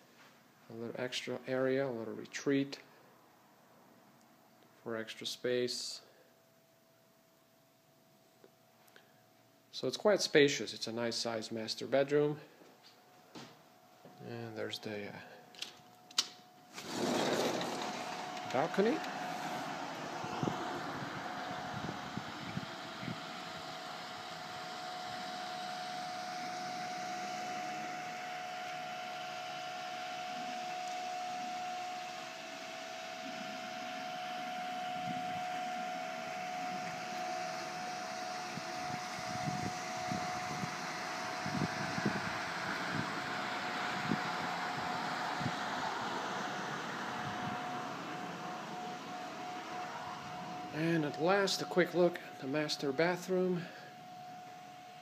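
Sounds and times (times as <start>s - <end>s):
steady mechanical hum: 0.0s - 55.0s
outdoor noise: 15.5s - 55.0s.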